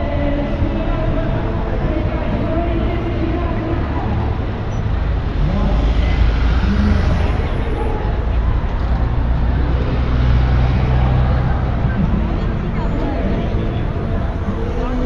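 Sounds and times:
bus engine humming: 0.0 - 15.0
cars and buses passing: 0.0 - 15.0
crowd voices: 0.0 - 15.0.

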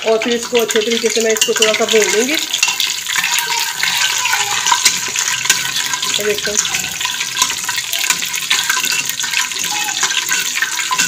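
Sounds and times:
ladle stirring in a pot: 0.0 - 11.0
spices sizzling in hot oil: 0.0 - 11.0.

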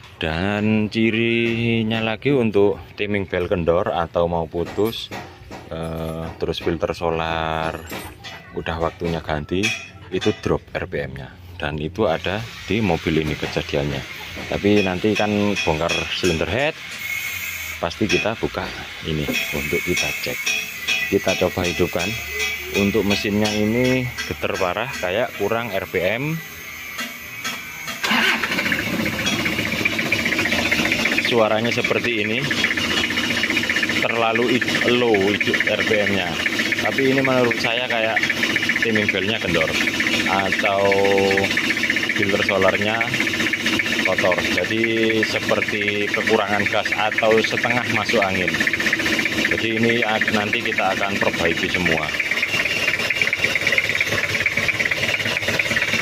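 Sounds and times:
diesel engine cranking and starting: 0.0 - 56.0
diesel engine idling with clatter: 0.0 - 56.0.

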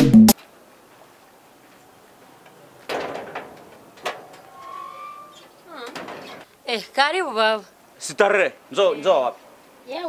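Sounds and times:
sheet metal gate clattering: 2.6 - 6.5
brief squeak: 4.4 - 5.6.

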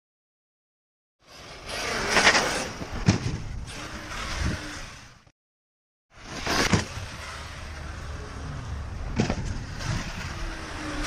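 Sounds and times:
rc truck motor running: 1.3 - 2.9, 3.6 - 5.2, 6.9 - 11.0.

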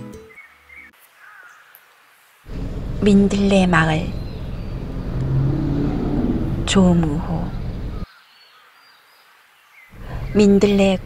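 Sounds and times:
faint low hum: 2.5 - 8.0
low outdoor rumble: 2.5 - 8.1, 10.0 - 11.0.

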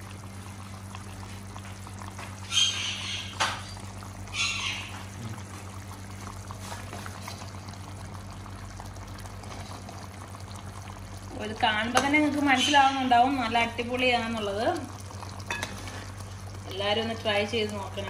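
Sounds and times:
curry simmering in a pot: 0.0 - 18.0
steady low hum: 0.0 - 18.0.

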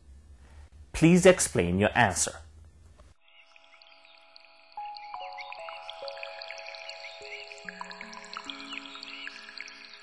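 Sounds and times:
soft music of held notes: 3.2 - 10.0.

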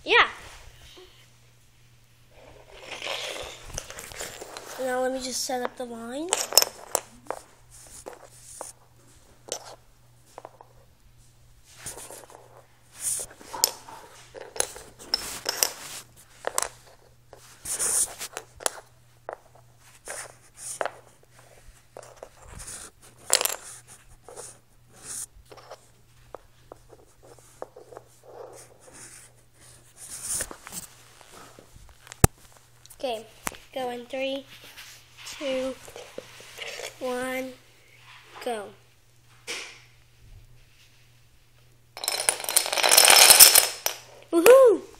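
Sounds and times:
dominoes clicking on wooden floor: 2.7 - 4.8, 5.6 - 7.4, 42.0 - 44.6.

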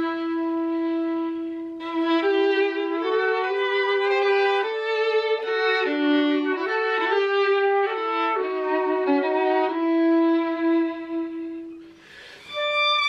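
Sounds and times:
flute and violin duet: 0.0 - 13.0.

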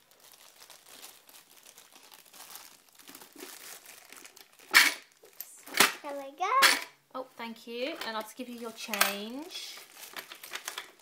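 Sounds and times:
plastic bag crinkling: 0.0 - 6.6, 8.1 - 11.0.

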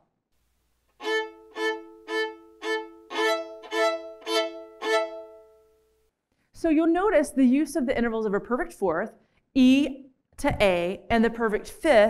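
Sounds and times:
violin playing bowed double stops: 1.0 - 5.7.

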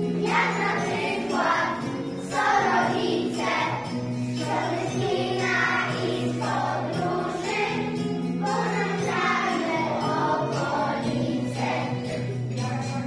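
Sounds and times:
backing music: 0.0 - 13.0
children singing: 0.0 - 13.0.

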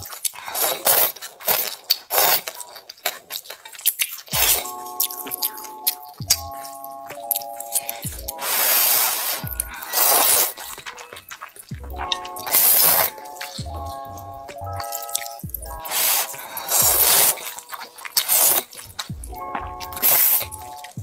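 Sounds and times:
background music: 0.0 - 21.0
noodles being slurped: 0.0 - 21.0.

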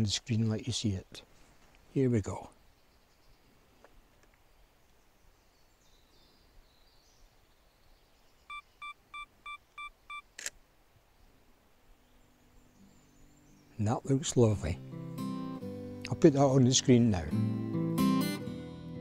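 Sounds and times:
camera shutter click: 10.3 - 10.6.

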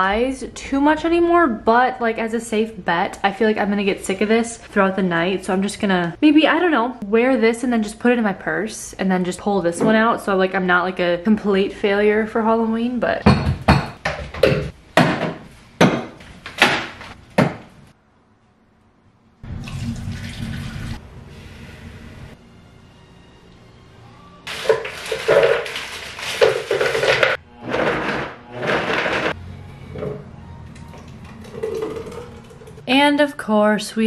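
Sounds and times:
frozen fruit clattering into blender jar: 24.5 - 29.3.

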